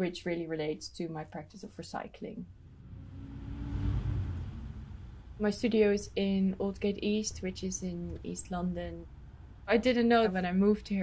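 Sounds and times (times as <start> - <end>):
vehicle passing: 2.5 - 6.0.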